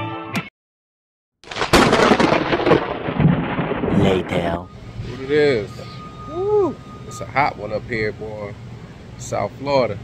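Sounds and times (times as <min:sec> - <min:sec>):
loud rumbling with crackles: 0:01.4 - 0:05.3.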